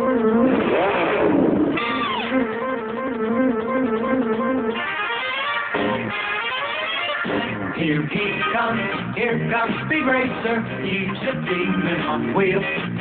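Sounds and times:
swooping rising and falling sound: 0.0s - 5.9s
band playing: 0.0s - 13.0s
guitar-led riff: 0.0s - 13.0s.

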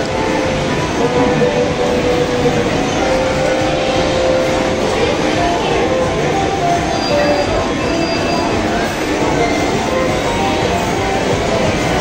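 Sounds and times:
arcade background noise: 0.0s - 12.0s.

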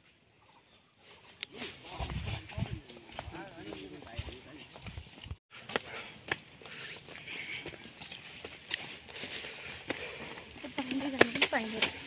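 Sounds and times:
footsteps on pavement: 2.5s - 12.0s.

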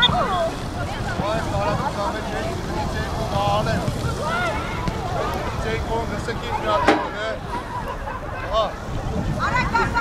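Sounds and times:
people shouting and calling: 0.0s - 10.0s
wind buffeting microphone: 0.0s - 10.0s.

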